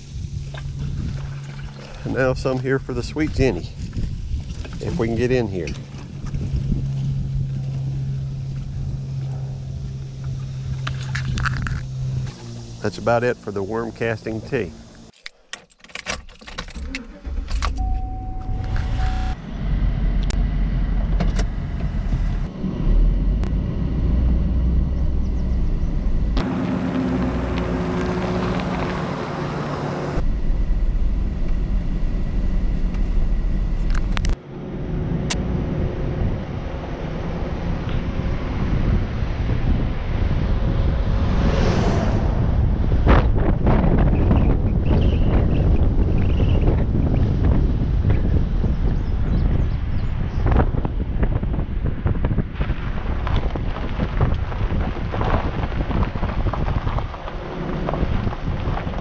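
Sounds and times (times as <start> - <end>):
pickup truck engine running: 0.0 - 15.1, 17.8 - 39.8
short warning tone: 17.8 - 19.4.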